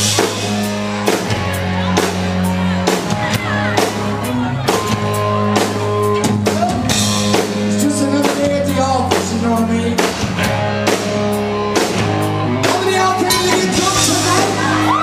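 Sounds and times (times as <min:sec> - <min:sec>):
drum kit steady beat: 0:00.0 - 0:15.0
rock band playing live: 0:00.0 - 0:15.0
man singing: 0:07.6 - 0:10.2, 0:12.6 - 0:15.0.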